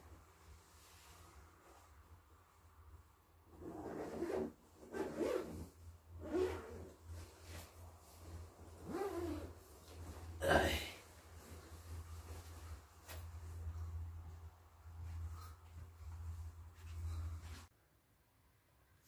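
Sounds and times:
sleeping bag fabric rustling: 3.5 - 17.7.

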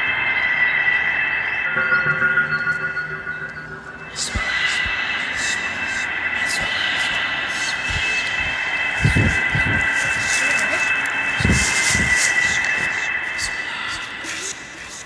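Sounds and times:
high-pitched drone: 0.0 - 14.4.

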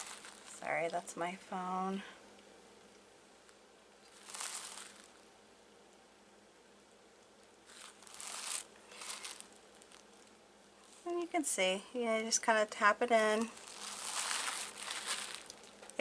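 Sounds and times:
rustling and sliding on cloth: 0.0 - 0.6, 4.1 - 5.2, 7.7 - 11.2, 13.5 - 15.8.

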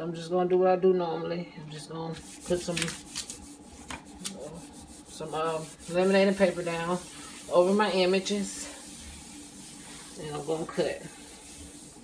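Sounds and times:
laminated paper rustling: 2.1 - 12.0.

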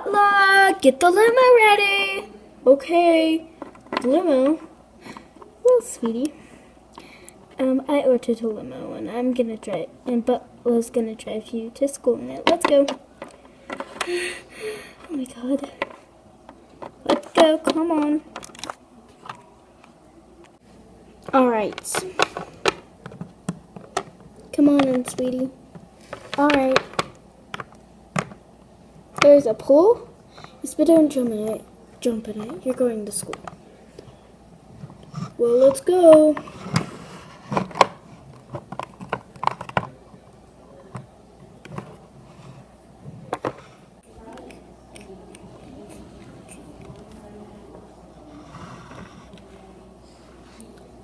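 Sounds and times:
plastic toys clicking and tapping: 21.2 - 28.4, 37.5 - 40.0.

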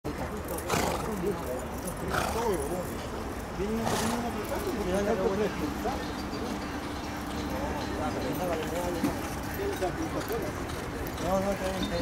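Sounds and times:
people talking indistinctly: 0.1 - 12.0.

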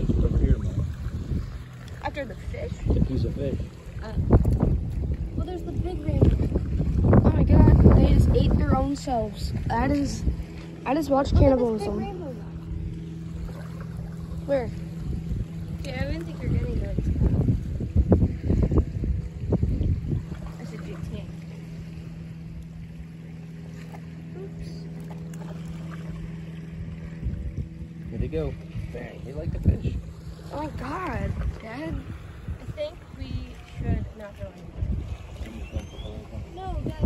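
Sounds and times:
low motor hum: 0.0 - 37.0
wind rumbling on microphone: 0.0 - 37.0.

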